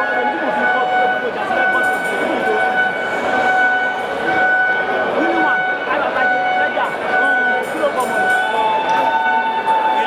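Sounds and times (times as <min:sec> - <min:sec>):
crowd voices: 0:00.0 - 0:10.0
high horn-like tone: 0:00.0 - 0:10.0.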